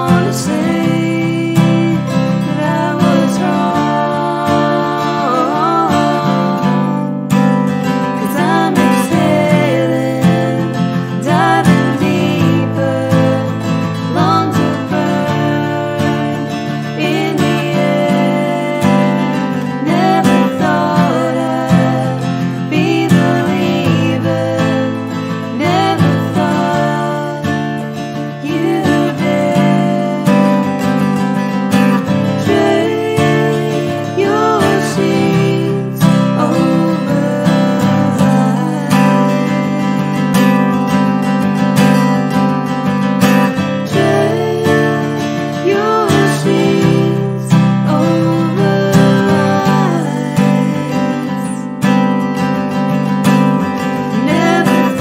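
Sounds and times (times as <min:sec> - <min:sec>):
women singing in harmony: 0:00.0 - 0:07.3, 0:08.0 - 0:40.6, 0:43.6 - 0:51.7, 0:54.0 - 0:55.0
acoustic guitar strumming: 0:00.0 - 0:55.0.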